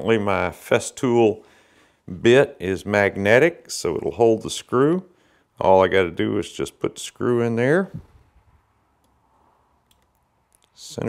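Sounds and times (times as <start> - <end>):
faint clicks: 9.8 - 10.8.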